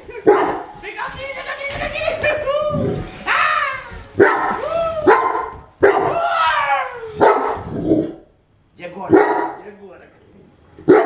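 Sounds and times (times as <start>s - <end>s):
dog barking: 0.2s - 0.7s, 4.2s - 6.2s, 7.2s - 7.7s, 9.1s - 9.6s.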